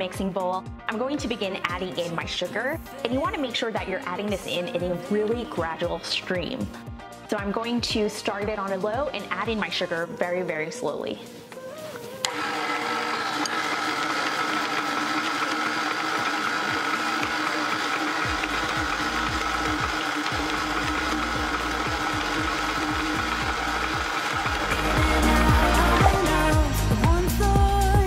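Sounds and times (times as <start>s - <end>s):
background music: 0.0s - 28.0s
stand mixer motor whine: 12.3s - 26.6s.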